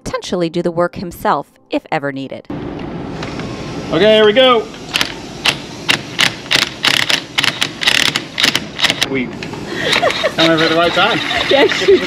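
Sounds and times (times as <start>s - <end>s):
cordless driver rattling bursts: 5.0s - 9.1s.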